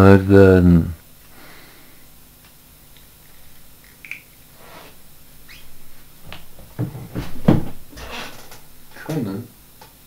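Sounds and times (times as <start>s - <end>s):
bumps and knocks: 6.2s - 8.7s.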